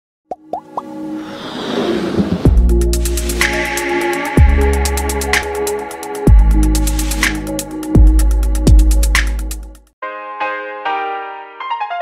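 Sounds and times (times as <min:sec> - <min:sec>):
quick pops rising in pitch: 0:00.3 - 0:00.9
musical build-up: 0:00.4 - 0:09.7.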